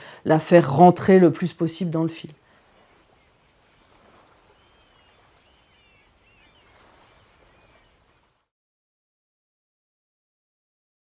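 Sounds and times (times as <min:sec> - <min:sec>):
soft bird chirps: 0:02.3 - 0:08.5.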